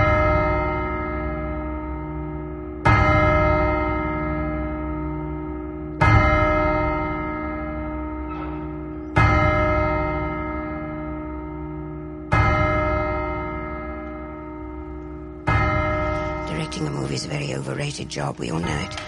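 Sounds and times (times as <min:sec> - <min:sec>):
large bell tolling: 0:00.0 - 0:19.0.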